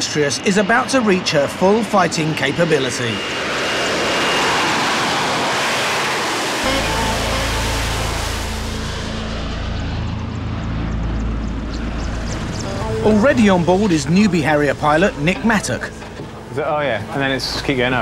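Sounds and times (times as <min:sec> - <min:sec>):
jet engine rush: 0:00.0 - 0:18.0
thin jet whine: 0:02.8 - 0:18.0
deep low rumble: 0:06.6 - 0:16.7.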